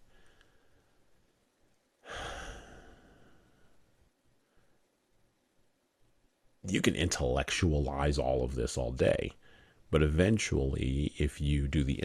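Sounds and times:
man sighing: 2.0 - 3.6.

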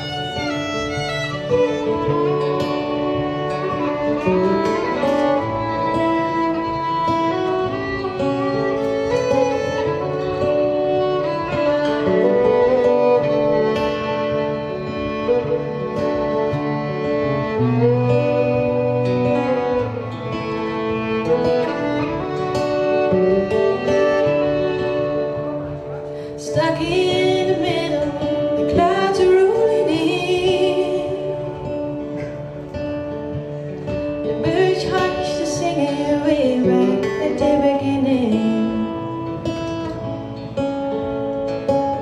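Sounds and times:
solo violin melody: 0.0 - 42.0.

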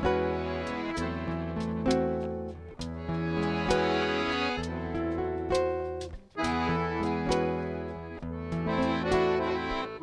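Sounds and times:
accordion melody: 0.0 - 10.0
acoustic guitar: 0.0 - 10.0
cajon drumming: 0.0 - 10.0.

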